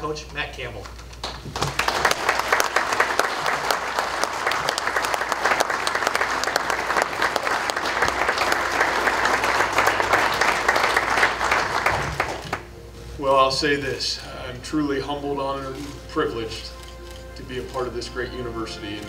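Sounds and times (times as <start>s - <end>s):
audience applauding: 1.2s - 12.7s.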